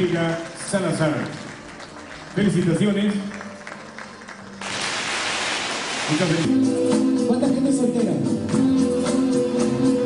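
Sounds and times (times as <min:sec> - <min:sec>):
audience clapping: 0:00.0 - 0:06.5.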